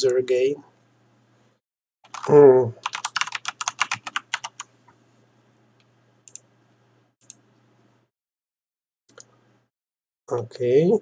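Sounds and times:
computer keyboard typing: 2.1s - 4.7s.

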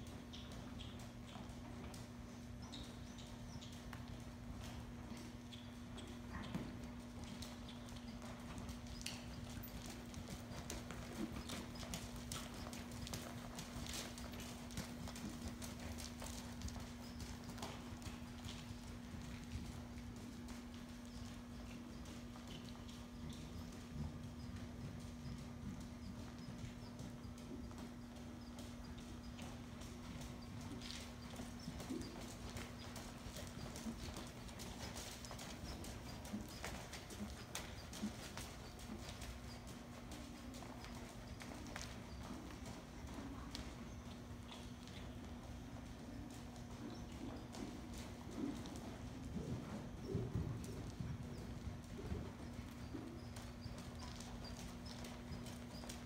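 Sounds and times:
horse hoofbeats on sand: 0.0s - 56.0s
steady low hum: 0.0s - 56.0s.

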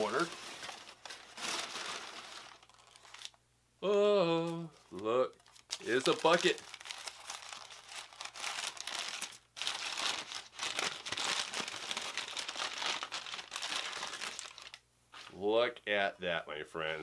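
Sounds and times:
wrapping paper crinkling: 0.0s - 3.4s, 4.7s - 14.8s.

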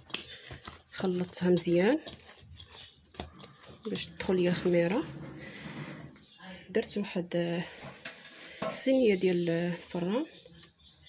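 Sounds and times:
hands kneading dough: 0.0s - 6.4s.

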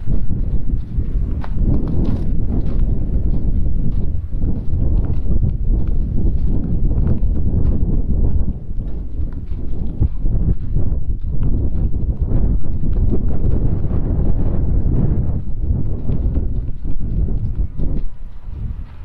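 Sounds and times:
footsteps on snow: 0.0s - 19.0s
steady low rumble: 0.0s - 19.0s.

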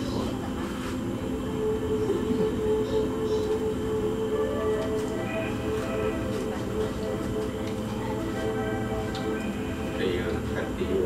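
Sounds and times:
low mechanical rumble: 0.0s - 11.0s.

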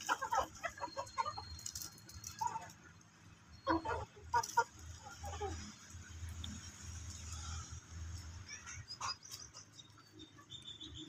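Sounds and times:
chickens clucking: 0.0s - 2.8s, 3.6s - 5.8s.

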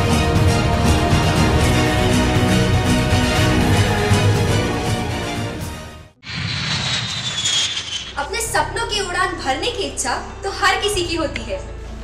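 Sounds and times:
jet aircraft passing: 6.2s - 8.6s.

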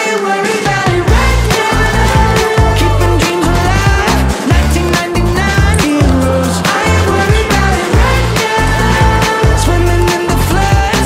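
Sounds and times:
music with strong bass and beat: 0.1s - 11.0s.

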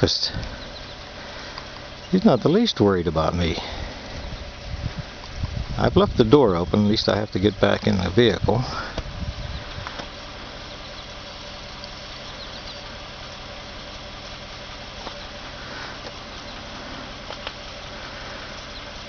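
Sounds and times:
vehicle engine idling: 0.0s - 19.0s.

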